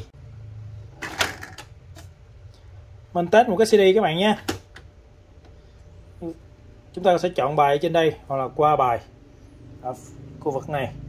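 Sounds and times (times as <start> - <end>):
low steady hum: 0.0 - 11.0
plastic lid springing open: 1.0 - 1.7.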